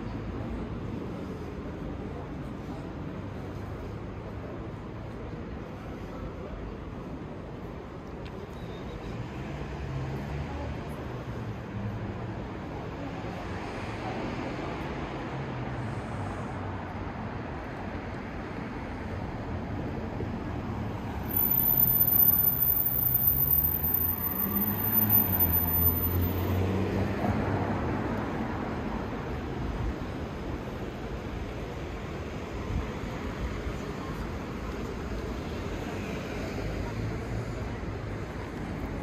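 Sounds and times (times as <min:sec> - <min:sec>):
city street traffic: 0:00.0 - 0:39.0.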